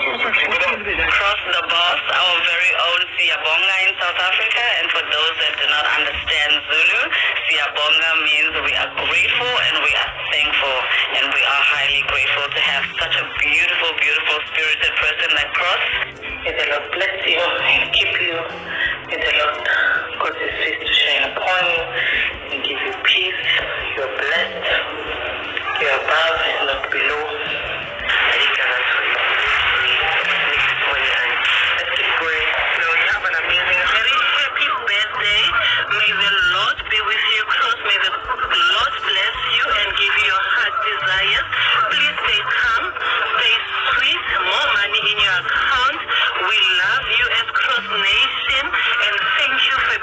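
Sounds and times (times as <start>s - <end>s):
background music: 0.0s - 50.0s
woman talking: 0.0s - 50.0s
low bass tones: 14.9s - 34.2s.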